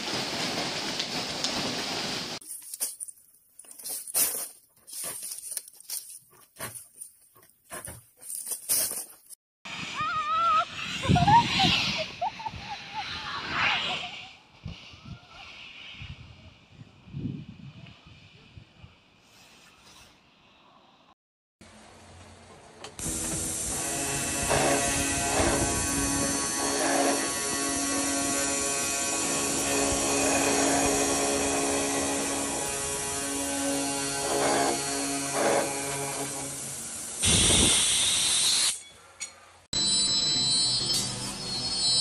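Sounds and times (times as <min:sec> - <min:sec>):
stems rustling: 0:00.0 - 0:09.4
circular saw cutting steel pipe: 0:23.0 - 0:42.0.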